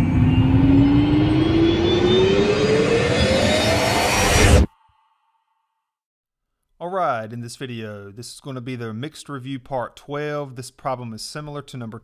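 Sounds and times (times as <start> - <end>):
rising tone climbing in pitch: 0.0 - 4.7.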